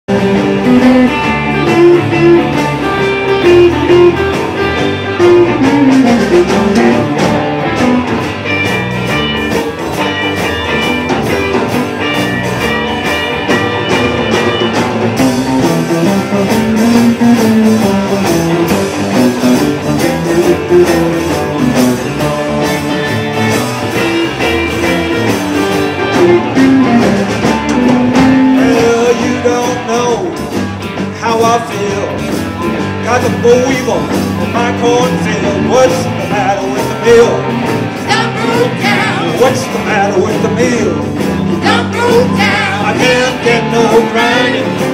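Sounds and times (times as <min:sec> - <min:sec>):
blues band playing: 0:00.1 - 0:44.9
lap steel guitar gliding notes: 0:00.2 - 0:29.9.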